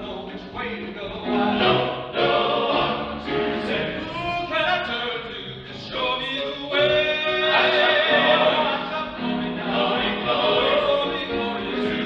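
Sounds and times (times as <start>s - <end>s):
men's ensemble singing: 1.2s - 4.6s, 5.6s - 12.0s.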